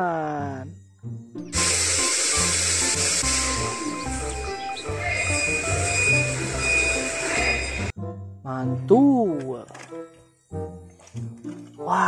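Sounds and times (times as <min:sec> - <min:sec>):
forklift hissing machine noise: 0:01.4 - 0:07.9.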